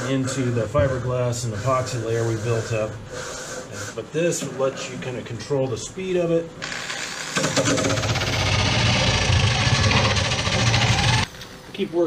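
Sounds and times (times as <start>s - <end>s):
drill motor whirring: 6.6s - 11.3s
grinding disc rasping on epoxy: 6.6s - 11.3s.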